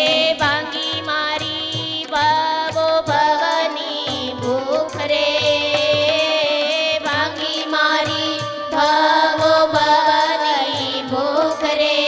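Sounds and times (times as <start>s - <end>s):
instrumental accompaniment with beat: 0.0s - 12.0s
woman singing devotional song: 0.0s - 12.0s.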